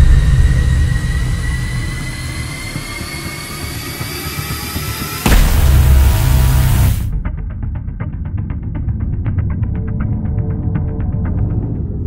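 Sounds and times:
deep rumble: 0.0s - 4.1s, 5.3s - 12.0s.

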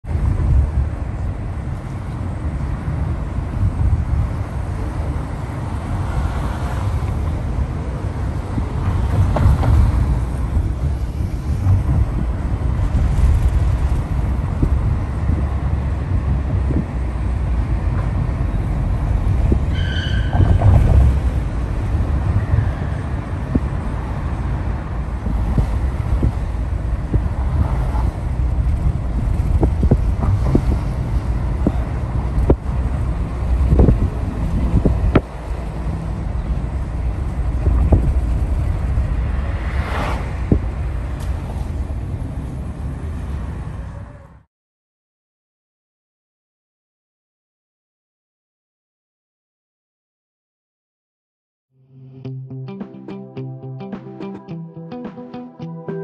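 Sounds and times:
road and engine rumble: 0.0s - 44.5s
brief high tone: 52.3s - 56.0s.

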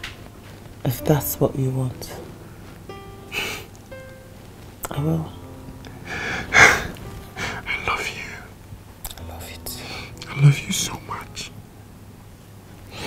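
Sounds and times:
breathy whispering: 3.3s - 3.7s, 4.8s - 11.6s.

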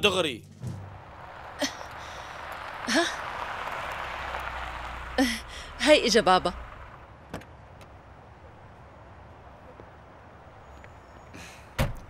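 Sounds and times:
low steady rumble: 0.1s - 7.3s.

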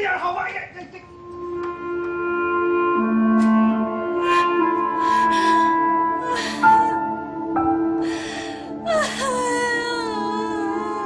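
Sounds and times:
background music: 0.0s - 11.0s
woman crying: 4.2s - 7.3s, 8.0s - 11.0s.

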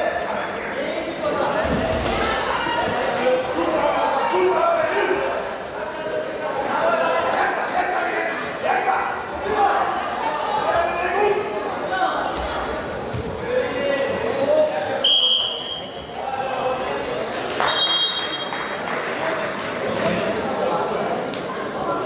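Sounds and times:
voices and calls in sports hall: 0.0s - 22.0s
referee's whistle blast: 15.0s - 15.9s
thin whistle tone: 15.0s - 16.0s, 17.7s - 18.5s.

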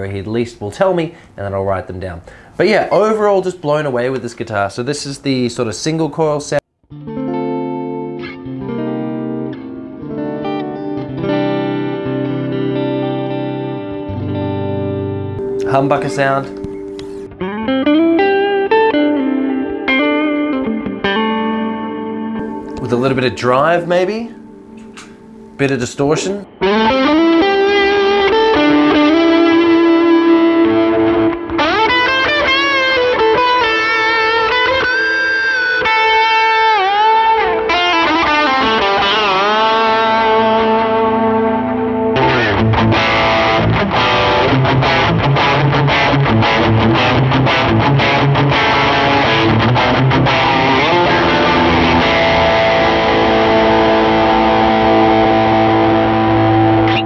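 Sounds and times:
distorted electric guitar: 6.9s - 57.0s.

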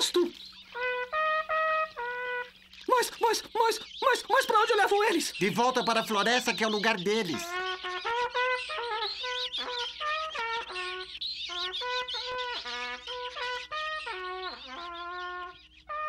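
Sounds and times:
out-of-tune cartoon trumpet: 0.7s - 2.6s, 7.4s - 16.0s.

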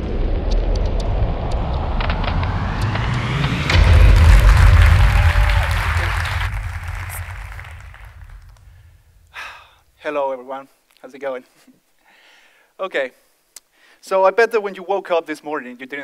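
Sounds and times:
rising whoosh: 0.0s - 9.3s
deep boom: 0.0s - 9.4s.

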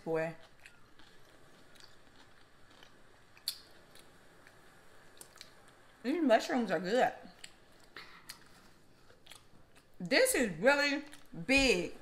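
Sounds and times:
chewing: 0.2s - 5.9s, 7.2s - 10.1s, 11.0s - 11.4s
wet mouth clicks: 3.4s - 4.1s.

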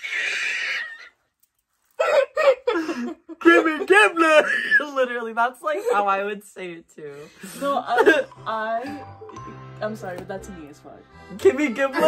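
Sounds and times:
woman shrieking: 0.0s - 1.1s.

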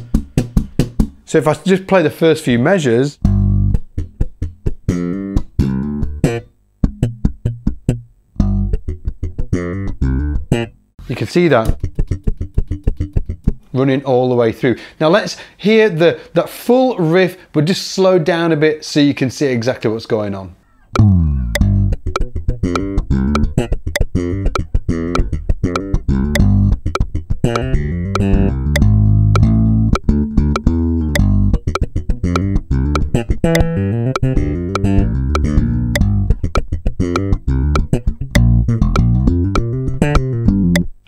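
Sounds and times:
slap bass guitar funk line: 0.0s - 1.2s, 3.2s - 13.7s, 21.0s - 41.0s
metronome clicking: 3.5s - 10.8s, 11.6s - 13.7s, 20.9s - 41.0s.

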